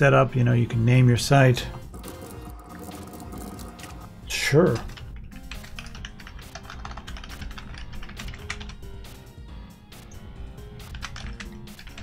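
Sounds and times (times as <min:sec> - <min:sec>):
computer keyboard typing: 0:04.6 - 0:08.8, 0:10.8 - 0:12.0.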